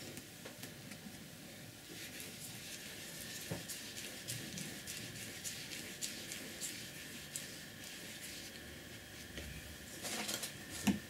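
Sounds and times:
paintbrush swishing on paper: 1.9 - 8.6.

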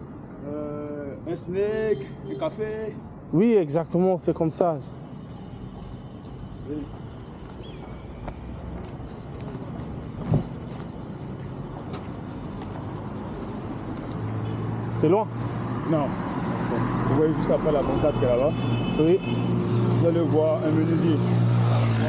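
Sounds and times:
roadside traffic noise: 0.0 - 22.0.

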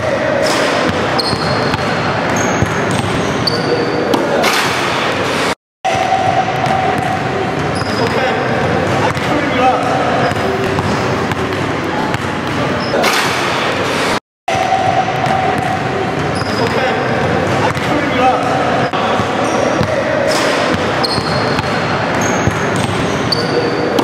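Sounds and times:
voices: 0.0 - 24.0
basketball bouncing on hardwood: 10.3 - 12.6.

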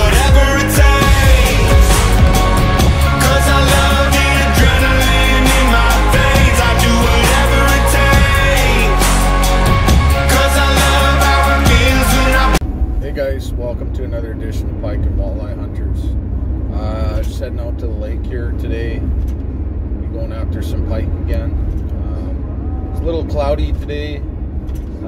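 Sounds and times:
vehicle road rumble: 0.0 - 25.0
man talking: 13.0 - 19.1, 20.0 - 22.3, 23.0 - 24.2.

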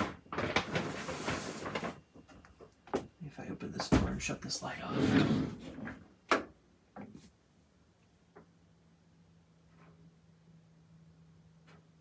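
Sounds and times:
faint low hum: 0.0 - 12.0
door opening with scraping: 4.8 - 6.0.

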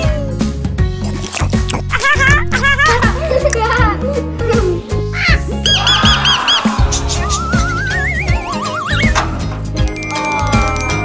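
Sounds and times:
upbeat music with bass beat: 5.0 - 11.0
cartoon chirps: 7.2 - 9.2.

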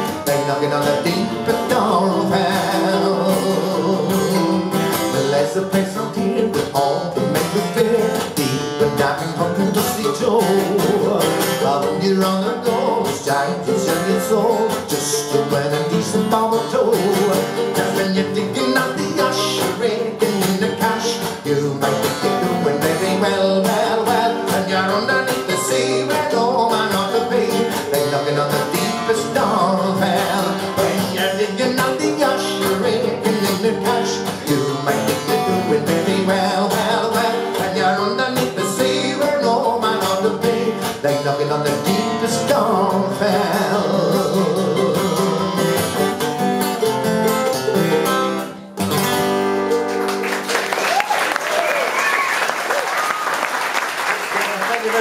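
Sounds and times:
man singing folk song: 0.0 - 49.7
mandolin: 0.0 - 50.8
strummed acoustic guitar: 0.0 - 50.8
audience applause: 49.8 - 55.0.

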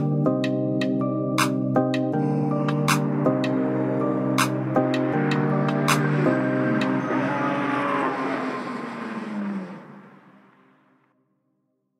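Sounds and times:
trap beat bass and synth: 2.0 - 7.6
downward pitch slide: 2.7 - 11.1.

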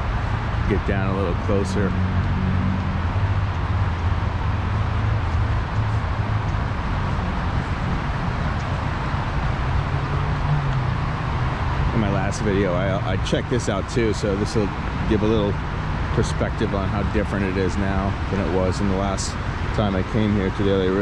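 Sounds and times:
low traffic rumble: 0.0 - 21.0.

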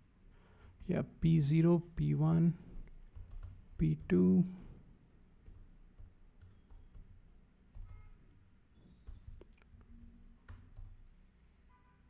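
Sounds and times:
computer keyboard keystrokes: 2.9 - 4.2, 5.4 - 8.1, 9.0 - 11.0.

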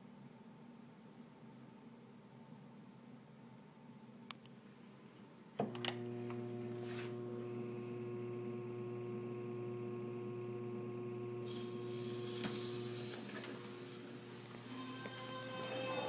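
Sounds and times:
record surface hiss: 0.0 - 7.6, 11.4 - 16.0
mains hum: 0.0 - 16.0.

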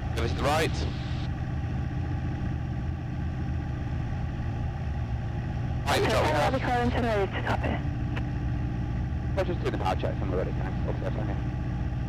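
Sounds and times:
airplane engine running steadily: 0.0 - 12.0.

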